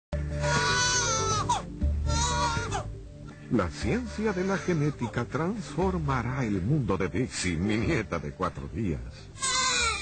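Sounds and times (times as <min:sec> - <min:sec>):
background music: 0:00.1 - 0:10.0
newborn baby crying: 0:00.3 - 0:03.0, 0:04.1 - 0:05.3, 0:09.4 - 0:10.0.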